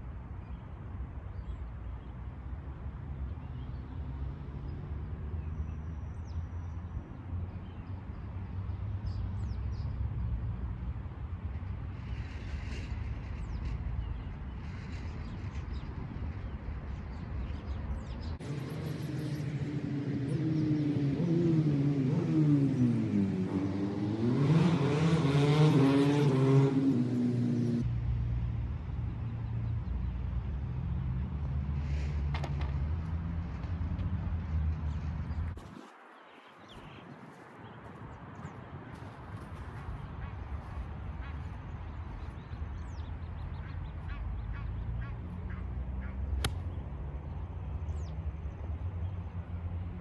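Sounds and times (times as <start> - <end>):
engine running: 18.4 - 25.6
golf club striking ball: 46.4 - 46.7.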